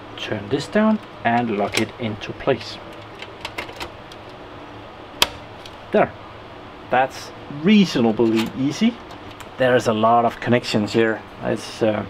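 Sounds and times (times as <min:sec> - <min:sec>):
latch snapping into place: 0:05.2 - 0:05.7.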